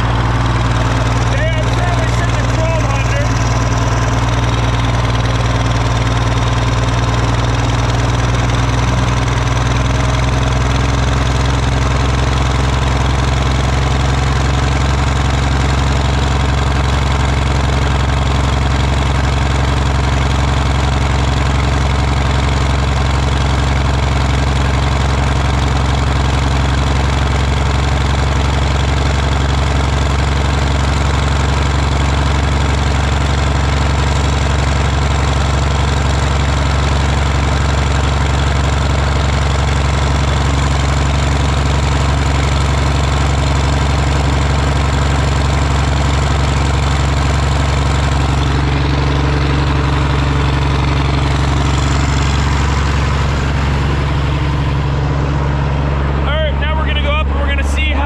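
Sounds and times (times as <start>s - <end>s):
pump engine running loudly: 0.0s - 58.0s.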